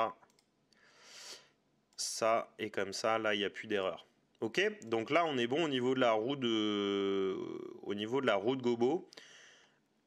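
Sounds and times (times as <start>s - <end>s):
computer mouse clicks: 0.2s - 0.6s.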